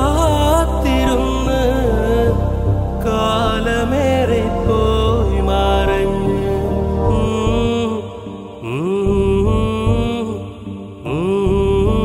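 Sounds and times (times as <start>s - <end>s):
low steady accompaniment: 0.0s - 12.0s.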